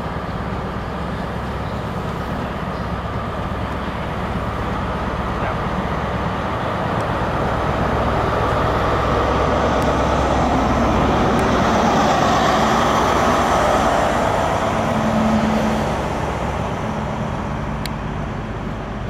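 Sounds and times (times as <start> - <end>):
diesel train engine passing: 0.0 - 19.0
train wheels on rails: 0.0 - 19.0.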